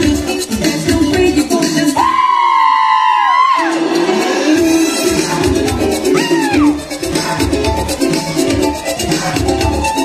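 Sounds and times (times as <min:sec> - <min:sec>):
high voice whooping: 0:02.0 - 0:03.9, 0:06.0 - 0:06.8.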